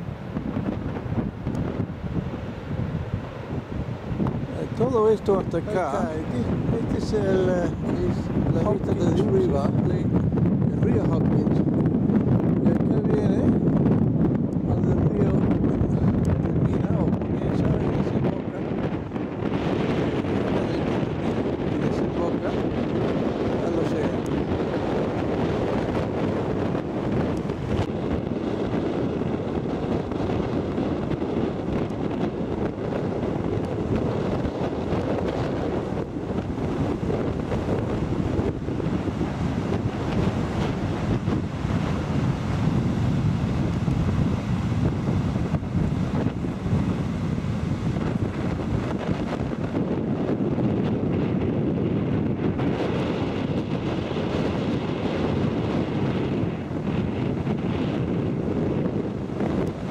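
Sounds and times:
ocean surf breaking: 0.0s - 10.6s, 16.4s - 59.9s
wind buffeting microphone: 0.0s - 59.9s.

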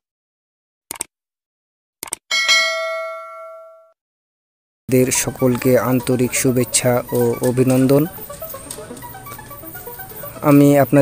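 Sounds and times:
notification bell ding: 2.3s - 3.9s.

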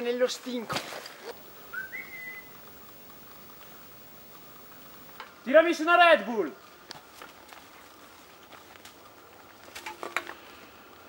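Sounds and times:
rising whistle: 1.7s - 2.6s.

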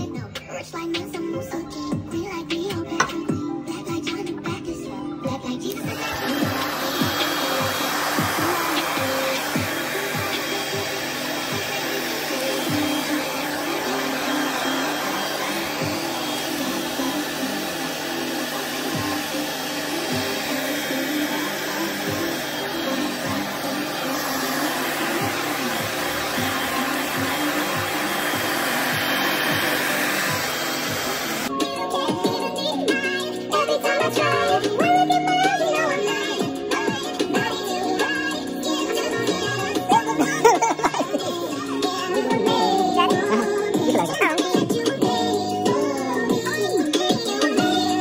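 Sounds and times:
music with a beat: 0.0s - 16.5s, 31.5s - 48.0s
hair dryer blowing: 5.6s - 48.0s.

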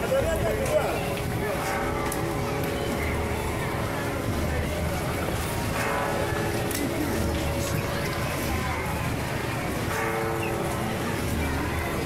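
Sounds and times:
street procession din: 0.0s - 12.0s.

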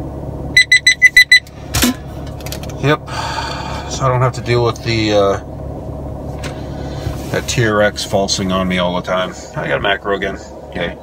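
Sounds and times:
short high beeps: 0.6s - 1.5s.

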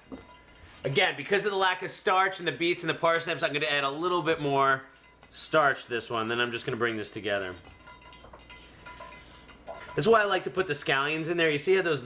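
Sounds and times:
low steady hum: 0.0s - 12.0s
hands squeezing wet batter: 4.8s - 10.9s.

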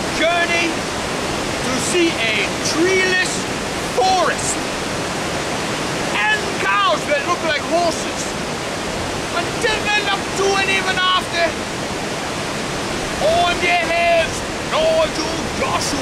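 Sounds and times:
waterfall rushing: 0.0s - 16.0s.

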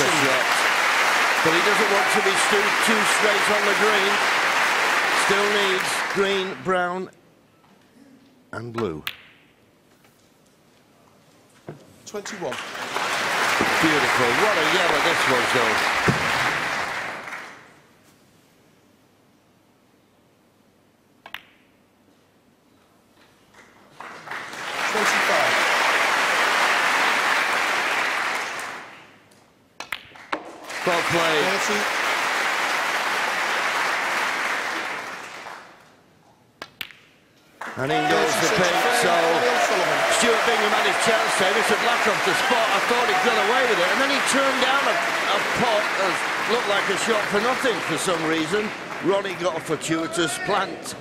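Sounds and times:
people cheering: 0.0s - 6.7s, 12.7s - 17.6s, 24.2s - 28.9s, 30.7s - 35.4s, 37.7s - 51.0s
audience applauding: 0.0s - 6.8s, 12.4s - 17.7s, 23.9s - 29.1s, 30.2s - 35.8s, 37.6s - 50.7s.

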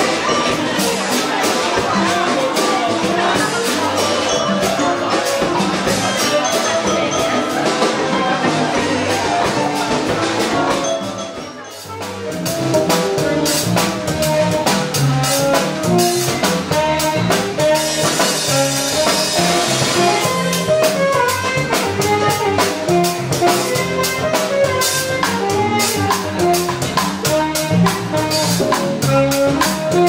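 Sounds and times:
drum kit beat: 0.0s - 30.0s
latin jazz band playing: 0.0s - 30.0s.

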